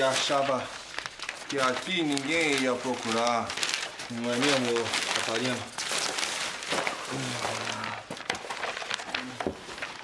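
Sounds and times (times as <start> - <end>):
paper rustling: 0.0 - 10.0.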